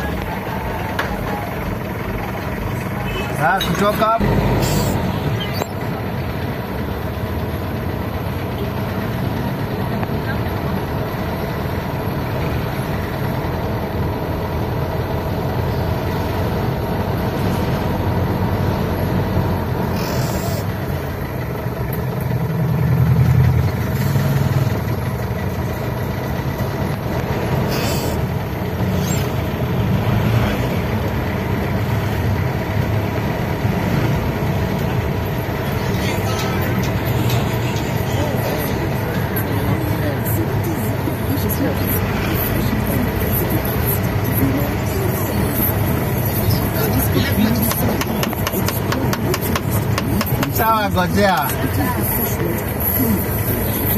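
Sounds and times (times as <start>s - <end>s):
vehicle engine and road noise: 0.0s - 53.9s
murmur of voices: 35.0s - 53.9s.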